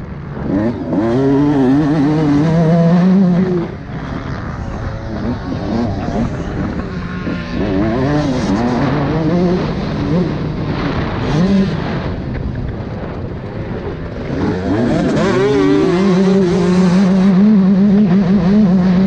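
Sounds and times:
motocross bike engine revving: 0.0s - 12.3s, 13.5s - 19.0s
wind noise: 0.0s - 19.0s.

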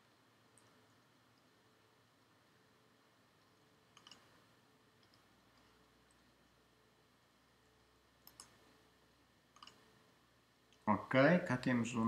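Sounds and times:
computer mouse clicking: 0.5s - 1.5s, 3.4s - 4.4s, 5.0s - 6.3s, 7.6s - 8.7s, 9.5s - 9.9s.

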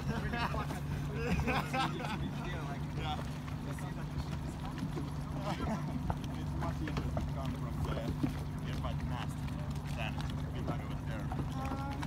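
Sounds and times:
boat engine idling: 0.0s - 12.0s.

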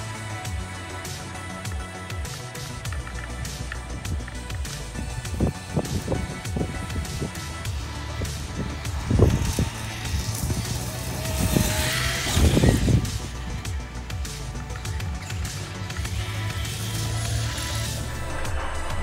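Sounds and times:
background music: 0.0s - 19.0s
loud low rumbles: 2.9s - 19.0s
toy truck electric motor whining: 6.9s - 13.5s.

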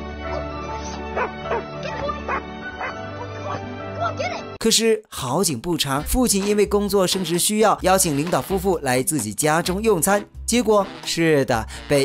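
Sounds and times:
background music: 0.0s - 12.0s
dog barking: 1.1s - 3.7s.

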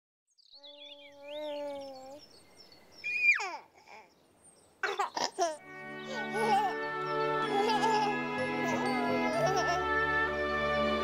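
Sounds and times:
baby cooing and babbling: 0.6s - 2.3s, 3.1s - 4.2s, 4.9s - 6.8s
baby squealing: 3.0s - 4.1s
baby giggling: 3.1s - 4.1s, 4.8s - 9.9s.

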